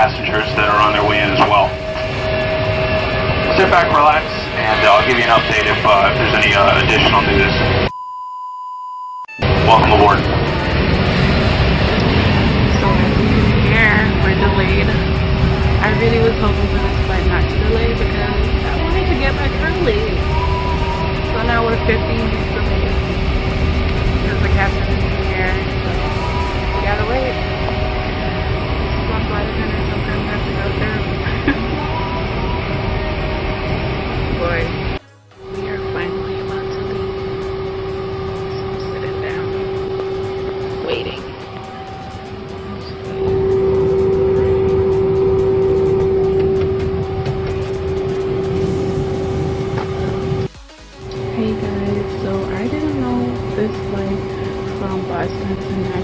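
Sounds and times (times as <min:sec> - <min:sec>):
airliner cabin hum and rush: 0:00.0 - 0:07.9, 0:09.4 - 0:56.0
music: 0:00.0 - 0:07.9, 0:09.3 - 0:56.0
voices: 0:00.0 - 0:07.9, 0:09.4 - 0:56.0.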